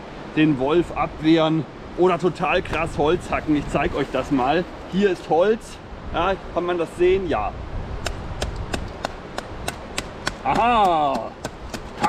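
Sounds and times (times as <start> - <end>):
axe chopping wood: 8.0 - 12.0.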